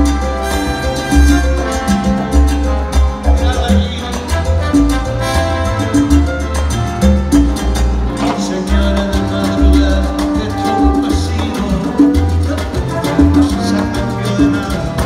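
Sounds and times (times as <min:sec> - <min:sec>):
congas: 0:00.0 - 0:15.0
live salsa band: 0:00.0 - 0:15.0
trumpets and trombones: 0:00.0 - 0:15.0.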